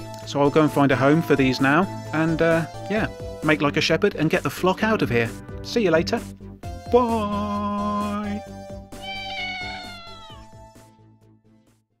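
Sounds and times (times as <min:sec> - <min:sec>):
cat meowing: 0:08.9 - 0:10.6.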